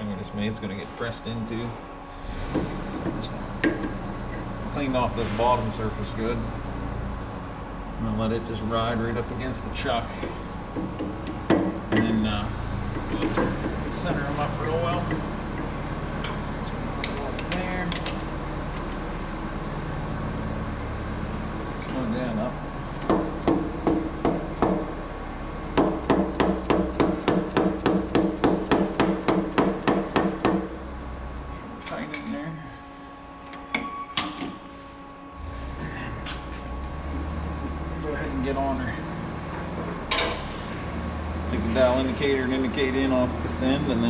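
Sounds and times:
low machine hum: 0.0s - 44.0s
hammer tapping metal: 23.0s - 24.9s, 25.7s - 30.8s.

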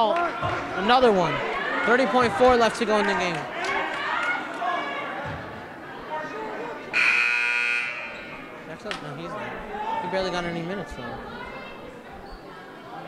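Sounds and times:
murmuring crowd voices: 0.0s - 13.0s
scoreboard horn: 6.9s - 8.3s.

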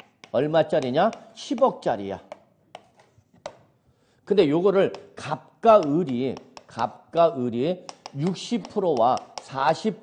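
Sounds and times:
chalk tapping on chalkboard: 0.0s - 3.7s, 4.8s - 5.1s, 5.7s - 6.9s, 7.7s - 9.9s.

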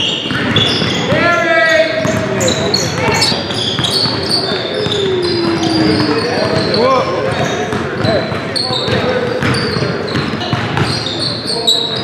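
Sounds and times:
basketballs bouncing on hardwood: 0.0s - 1.4s, 2.0s - 11.2s
sneakers squeaking: 0.0s - 12.0s
players calling out: 0.3s - 12.0s.

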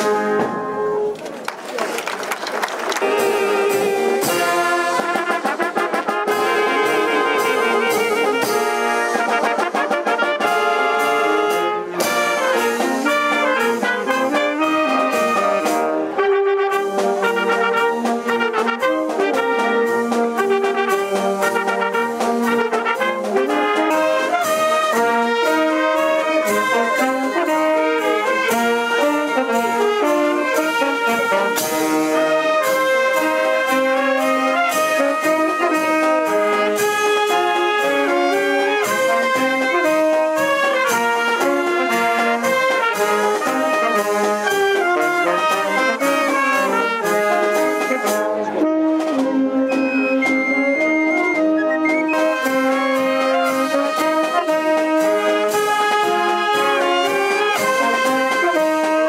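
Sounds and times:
marching wind band playing: 0.0s - 59.0s.

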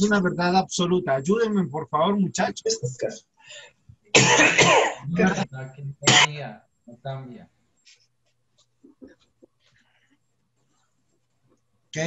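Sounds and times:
indistinct talk over video call: 0.0s - 12.0s
person coughing: 4.2s - 5.4s, 6.0s - 6.3s.

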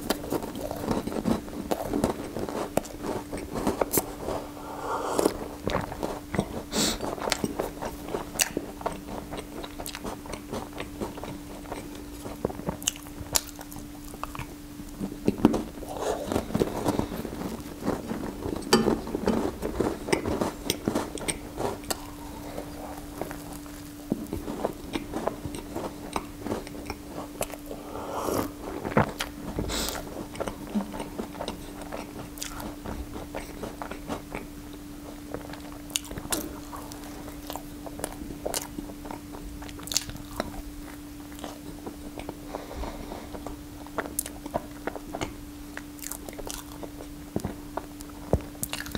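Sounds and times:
biting and chewing pastry: 0.0s - 48.9s
steady hum: 0.0s - 48.9s.

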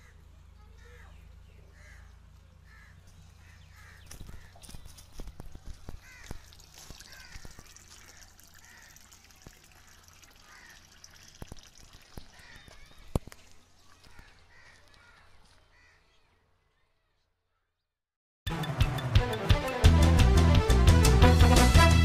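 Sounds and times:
faint bird calls: 0.0s - 9.5s, 12.1s - 17.9s.

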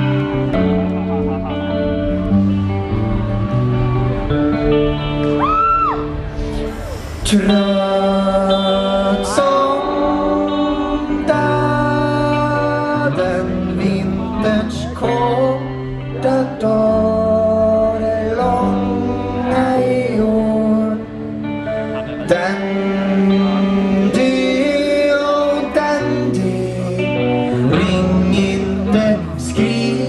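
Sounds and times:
electric guitar and band: 0.0s - 30.0s
man singing: 7.1s - 30.0s.

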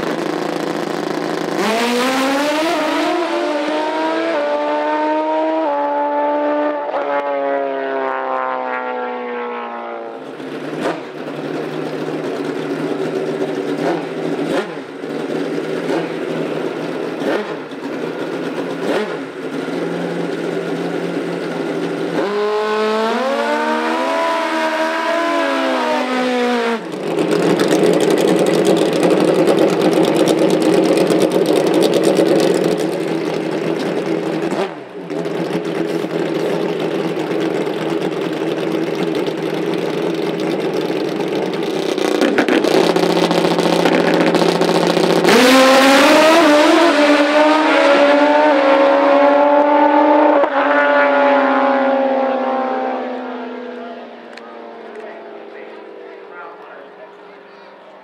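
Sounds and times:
tire-smoking burnout: 0.0s - 9.4s, 10.1s - 57.0s
motorcycle engines revving: 0.0s - 58.0s
motorcycles accelerating: 0.0s - 58.0s.

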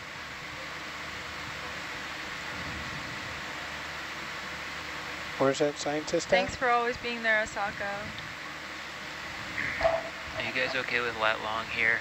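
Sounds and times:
steady background hiss: 0.0s - 12.0s
person speaking: 10.3s - 10.9s.

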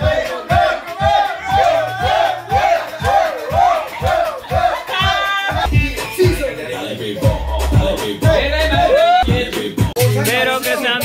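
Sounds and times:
music with bass beat: 0.0s - 11.0s
people yelling and cheering: 0.0s - 11.0s.

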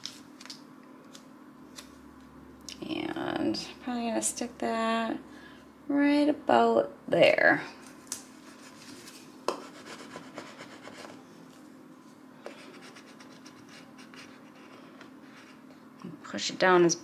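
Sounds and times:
scratchy rubbing on paper: 8.5s - 11.2s, 12.6s - 15.6s.

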